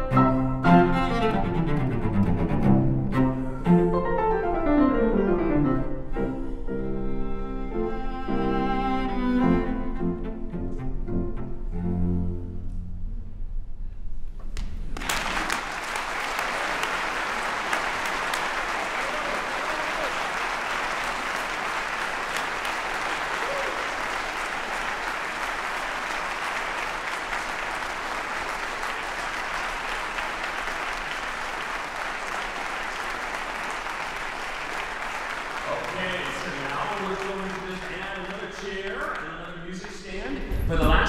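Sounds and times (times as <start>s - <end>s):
audience applauding: 14.6s - 40.5s.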